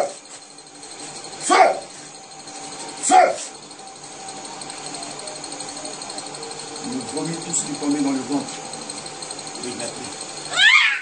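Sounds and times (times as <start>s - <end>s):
yelp-like cries: 10.5s - 11.0s.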